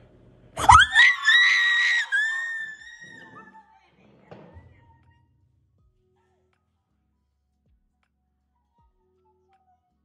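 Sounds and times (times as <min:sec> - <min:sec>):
high-pitched screaming of joy: 0:00.6 - 0:03.6.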